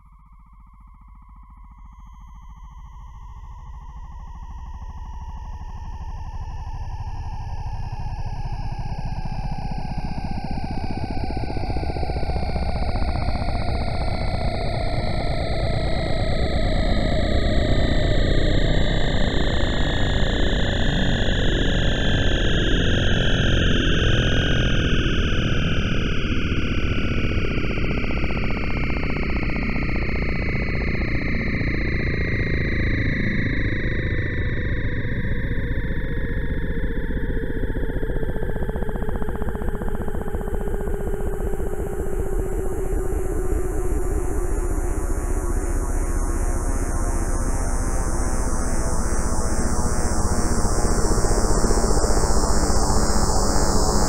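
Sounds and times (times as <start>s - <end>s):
low synthesizer rumble: 24.5s - 50.7s.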